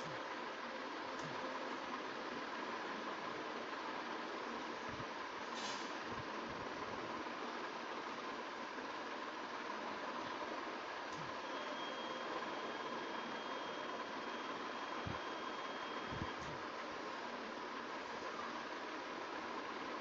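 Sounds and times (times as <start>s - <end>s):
faint hum: 6.0s - 20.0s
thin high whine: 11.2s - 16.6s.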